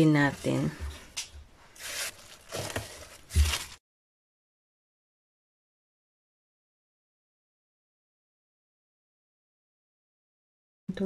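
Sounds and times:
cling film rustling and crinkling: 0.3s - 3.8s.

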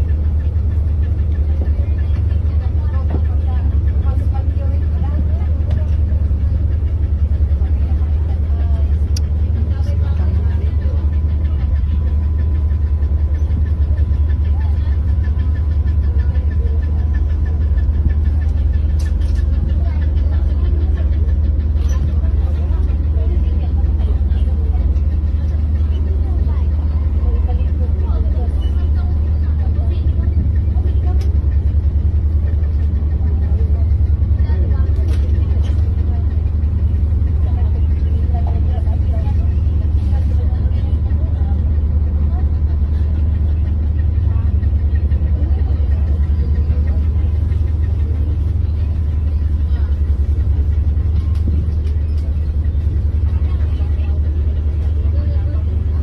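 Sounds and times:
ferry engines droning: 0.0s - 56.0s.

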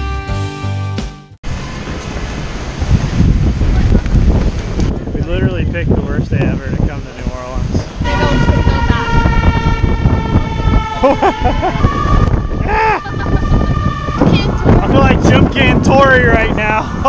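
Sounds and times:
wind buffeting microphone: 1.5s - 17.0s
vehicle horn: 8.0s - 12.6s.

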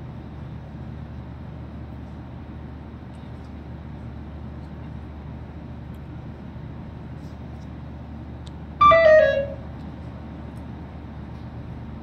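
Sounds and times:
low engine rumble: 0.0s - 12.0s.

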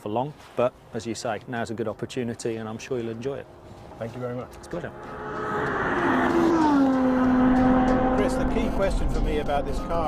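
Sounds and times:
car engine driving past: 4.6s - 9.5s.

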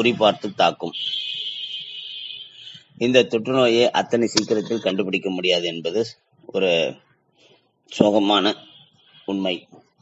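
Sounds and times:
high steady electronic tone: 4.4s - 5.1s.

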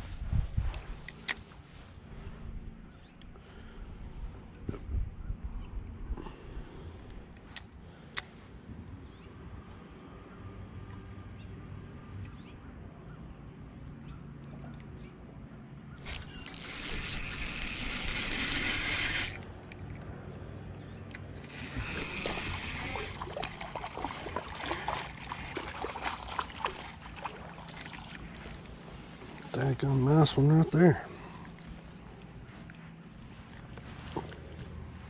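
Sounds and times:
low steady hum: 0.0s - 35.0s
fishing reel clicking: 16.0s - 19.8s, 21.1s - 23.2s.

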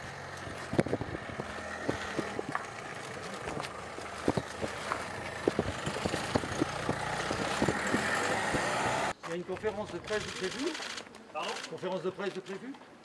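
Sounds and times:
van engine driving slowly: 0.0s - 9.2s
voices talking: 3.0s - 12.7s
camera shutter clicks: 10.1s - 11.9s.

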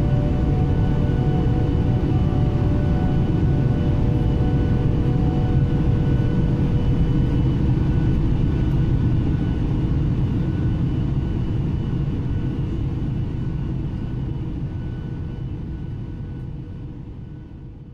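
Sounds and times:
faint whine tones: 0.0s - 17.7s
jet engine and airflow rumble: 0.0s - 17.9s.

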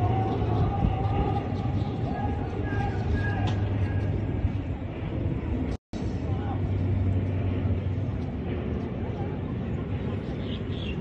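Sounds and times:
city hum and rumble: 0.0s - 11.0s
faint voices: 0.0s - 11.0s.

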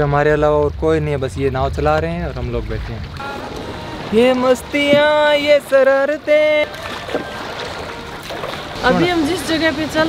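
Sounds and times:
river water rushing: 3.1s - 10.0s.

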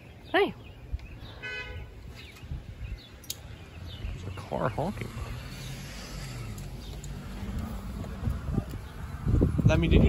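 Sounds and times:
car horn toot: 1.4s - 1.9s.

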